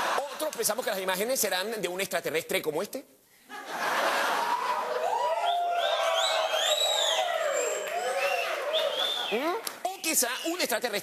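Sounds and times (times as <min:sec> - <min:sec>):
audience cheering: 0:04.3 - 0:09.5
whistles: 0:05.4 - 0:09.4, 0:10.0 - 0:10.7.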